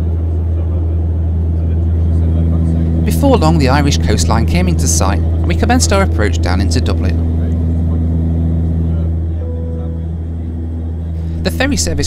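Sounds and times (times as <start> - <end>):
turboprop engines droning: 0.0 - 12.0.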